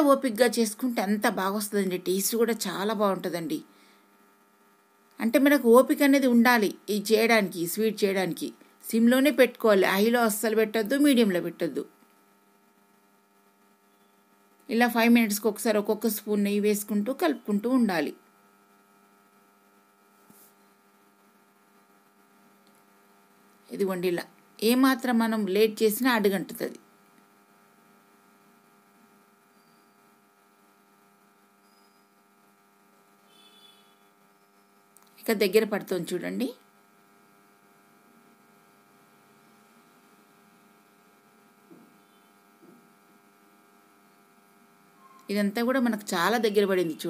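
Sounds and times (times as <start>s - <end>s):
person speaking: 0.0s - 3.7s, 23.7s - 26.8s, 45.3s - 47.0s
faint electrical hum: 0.0s - 47.0s.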